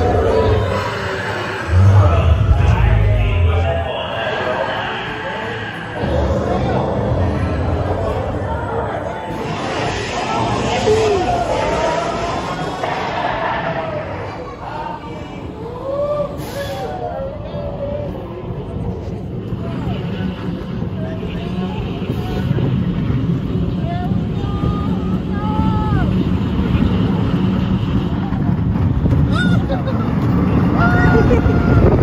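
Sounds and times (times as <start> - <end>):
roller coaster rumbling on track: 0.0 - 32.0.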